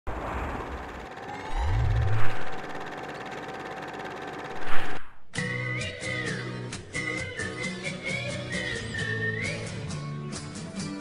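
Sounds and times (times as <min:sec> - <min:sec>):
low rumble: 0:00.1 - 0:02.9
rising sweep into whoosh-hit: 0:00.1 - 0:02.9.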